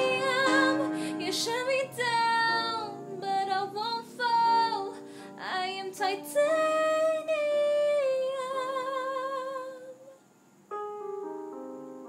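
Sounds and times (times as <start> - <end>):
piano playing slow chords: 0.0 - 6.4, 10.7 - 12.0
person singing: 0.0 - 10.1.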